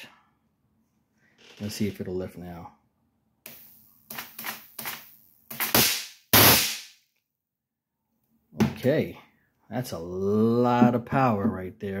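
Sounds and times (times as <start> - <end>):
high-voltage sparks snapping: 3.5 - 7.0.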